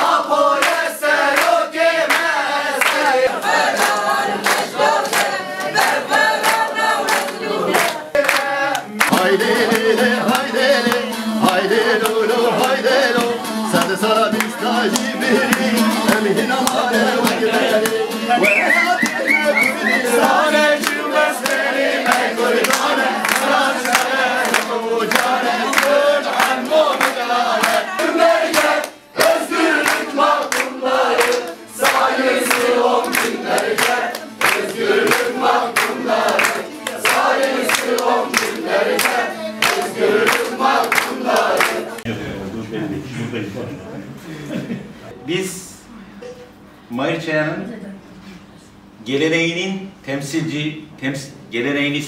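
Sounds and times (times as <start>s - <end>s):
group singing in unison: 0.0s - 42.1s
hand claps: 0.0s - 42.1s.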